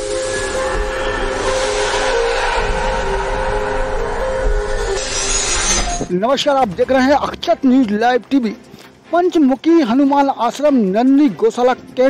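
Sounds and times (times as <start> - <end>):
loud rushing whoosh: 0.0 - 6.1.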